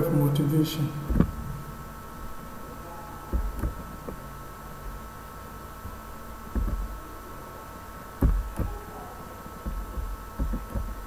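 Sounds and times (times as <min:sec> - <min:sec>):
faint steady hum: 0:00.0 - 0:11.0
dull low thumps: 0:05.8 - 0:07.0.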